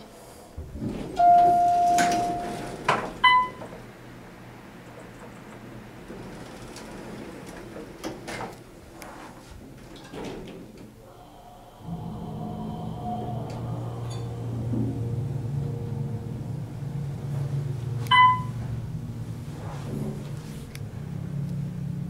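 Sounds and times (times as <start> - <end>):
elevator drive low hum: 0.5 - 9.0, 9.6 - 22.0
elevator doors closing: 0.6 - 22.0.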